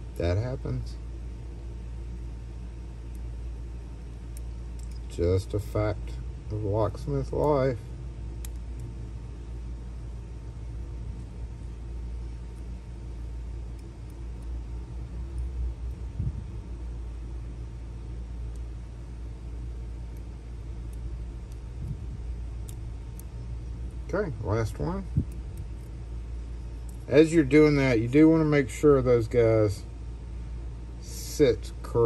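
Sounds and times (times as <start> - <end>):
faint hum: 0.0 - 32.0
low background rumble: 0.0 - 32.0
tweezers clicking: 4.0 - 5.1, 8.3 - 8.9, 13.7 - 14.6, 20.0 - 24.0.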